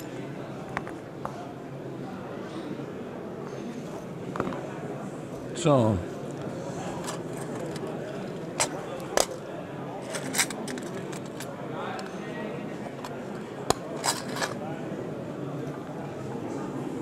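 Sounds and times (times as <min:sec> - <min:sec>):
room background noise: 0:00.0 - 0:17.0
tools clicking and knocking on mat: 0:08.6 - 0:09.4, 0:10.0 - 0:12.2, 0:12.9 - 0:14.6.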